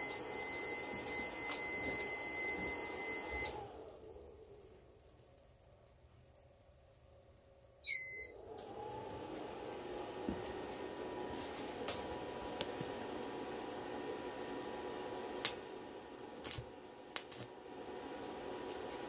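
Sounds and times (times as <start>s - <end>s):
high-pitched alarm tone: 0.0s - 3.5s
cooling fans humming: 0.0s - 19.0s.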